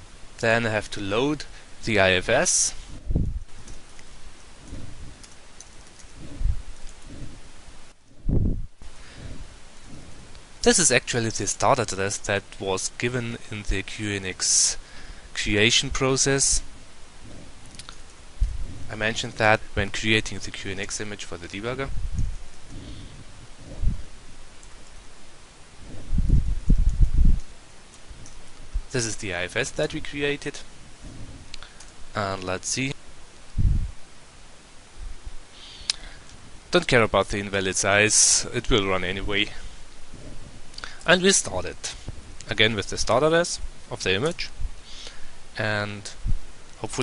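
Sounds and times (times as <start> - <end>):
microphone hiss: 0.0 - 47.0
soft low thumps: 2.8 - 3.6, 4.6 - 5.2, 6.1 - 10.3, 18.3 - 19.0, 21.9 - 24.4, 25.8 - 27.5, 33.5 - 34.0.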